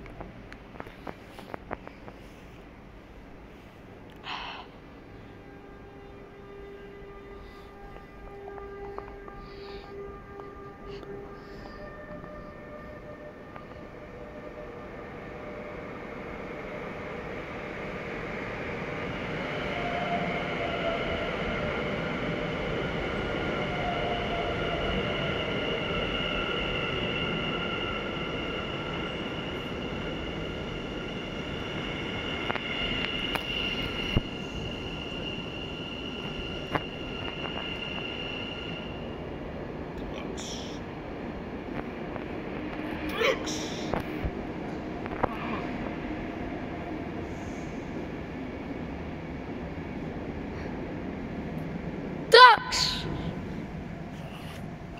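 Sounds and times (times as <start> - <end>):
train wheels rumbling on rails: 5.0 - 52.3.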